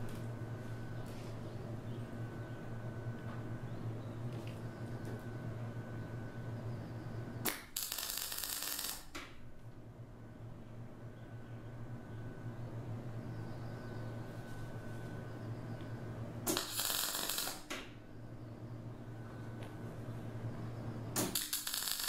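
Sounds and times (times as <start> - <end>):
steady low hum: 0.0 - 22.0
welding arc crackling: 7.4 - 9.2, 16.5 - 17.7, 21.2 - 22.0.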